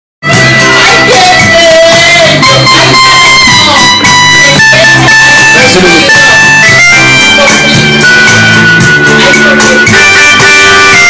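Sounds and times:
slow electronic keyboard chords: 0.2 - 11.0.

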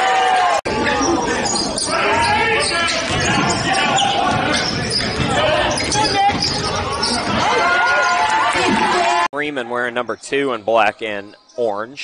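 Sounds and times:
basketball bouncing on hardwood: 3.0 - 7.5.

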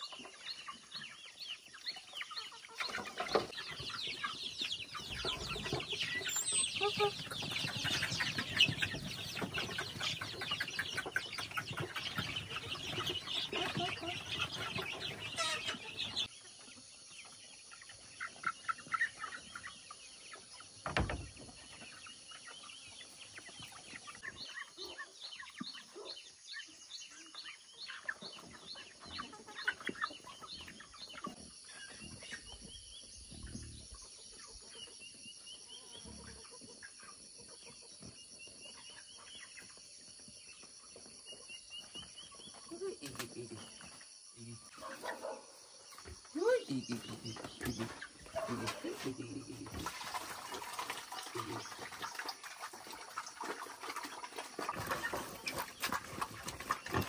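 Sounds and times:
chickens clucking: 0.0 - 57.0
chicks peeping: 0.0 - 57.0.

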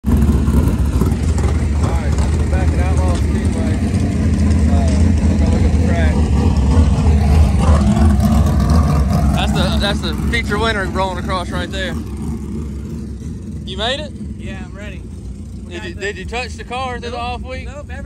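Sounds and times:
race car engine rumbling: 0.0 - 18.0.

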